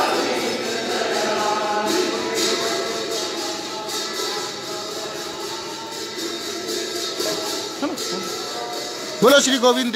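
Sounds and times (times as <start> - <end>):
devotional singing: 0.0 - 9.9
jingling metallic percussion: 0.0 - 9.9.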